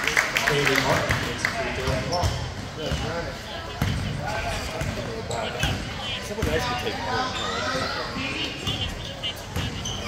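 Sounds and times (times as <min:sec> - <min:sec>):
voices of players and spectators: 0:00.0 - 0:10.0.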